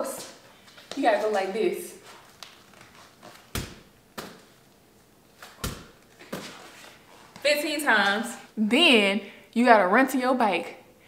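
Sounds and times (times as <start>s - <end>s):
ball thudding against wall: 3.4s - 4.5s, 5.4s - 6.7s.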